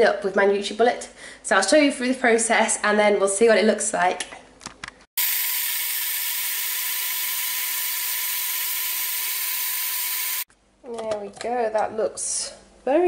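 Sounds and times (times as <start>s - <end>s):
personal blender running: 5.2s - 10.5s.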